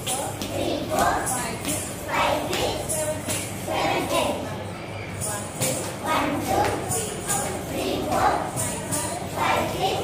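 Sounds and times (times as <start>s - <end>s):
dance class music: 0.0s - 10.0s
jingling percussion strokes: 0.0s - 10.0s.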